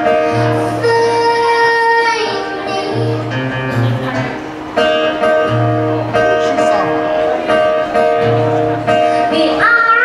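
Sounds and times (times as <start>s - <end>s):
acoustic guitar: 0.0s - 10.0s
woman singing: 0.2s - 3.4s, 9.2s - 10.0s.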